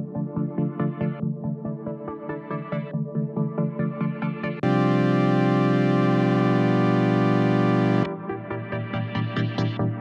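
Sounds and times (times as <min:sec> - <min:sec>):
held synthesizer chord: 0:04.6 - 0:09.5.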